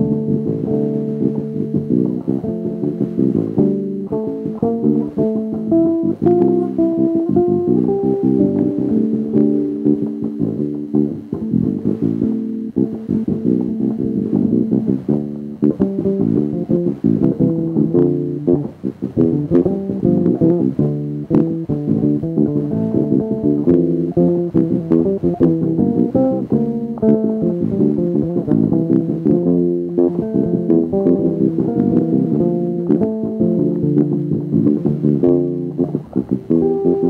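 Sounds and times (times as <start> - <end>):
electric bass plucked notes: 0.0 - 37.0.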